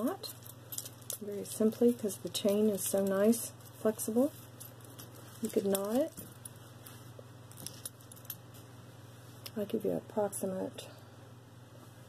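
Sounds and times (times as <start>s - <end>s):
metal necklace clinking: 0.0s - 8.7s.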